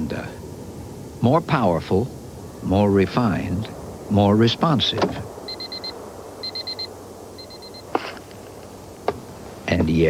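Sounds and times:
high electronic beeps: 0:05.5 - 0:07.9.

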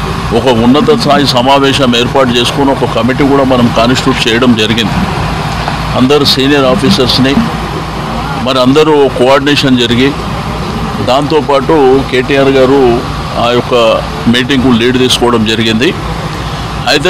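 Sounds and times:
steady low hum: 0:00.0 - 0:17.0
person speaking: 0:05.8 - 0:09.7.

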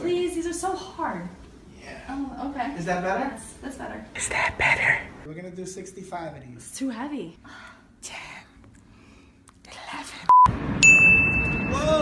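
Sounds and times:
short loud electronic beep: 0:10.3 - 0:12.0
higher ding-like tone: 0:10.8 - 0:12.0.

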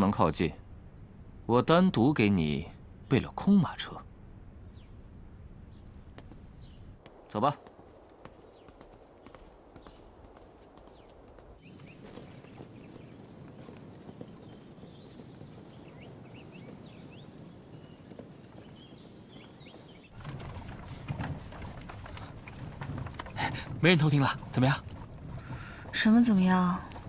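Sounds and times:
birdsong chirps: 0:00.0 - 0:27.0
horse hooves clip-clopping: 0:05.7 - 0:27.0
horse-drawn carriage rumbling: 0:07.8 - 0:27.0.

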